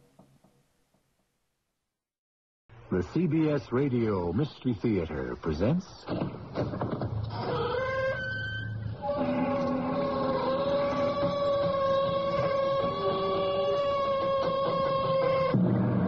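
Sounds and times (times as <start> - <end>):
door creaking open: 6.1 - 16.0.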